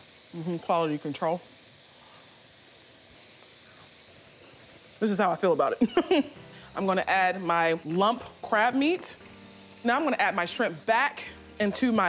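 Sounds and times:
faint hiss of liquid simmering in skillet: 0.0s - 12.0s.

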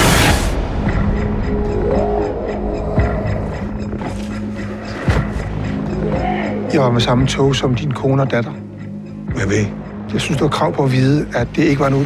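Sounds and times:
sharp hit: 0.0s - 2.3s
trailer music: 0.0s - 12.0s.

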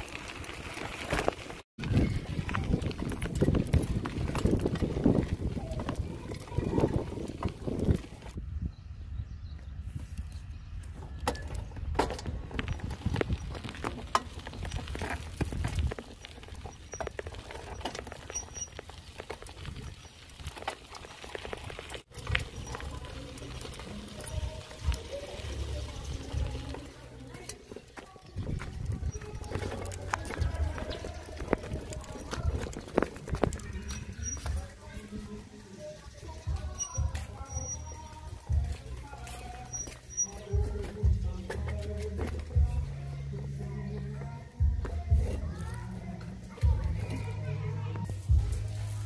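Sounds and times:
bike knocks and rattles: 0.0s - 8.4s, 10.8s - 35.2s, 36.2s - 47.4s
bicycle rolling on dirt track: 0.0s - 49.0s
wind rumble on microphone: 1.8s - 18.3s, 28.3s - 34.9s.

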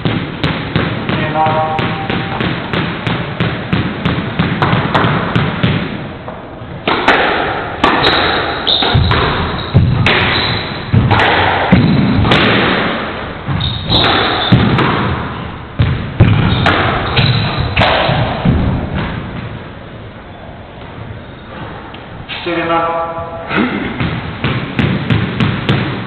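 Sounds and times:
racket striking ball: 0.0s - 19.6s, 23.9s - 26.0s
squash ball bouncing on wood: 0.0s - 19.6s, 24.0s - 26.0s
ball hitting walls: 0.0s - 20.0s, 23.6s - 26.0s.

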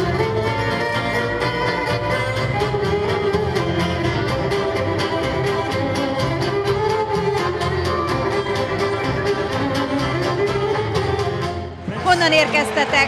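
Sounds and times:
accordion: 0.0s - 13.0s
fiddle: 0.0s - 13.0s.

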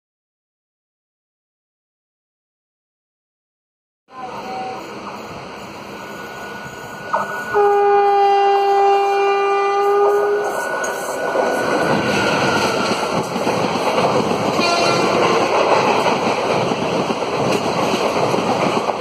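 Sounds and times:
train rushing past: 4.1s - 19.0s
train horn chord: 7.1s - 10.6s, 14.6s - 15.5s.

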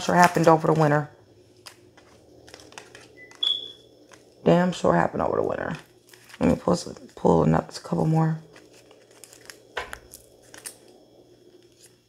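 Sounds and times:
cards clicking and rustling: 0.0s - 4.4s, 5.7s - 7.2s, 7.9s - 12.0s
high electronic beep: 3.2s - 3.8s.

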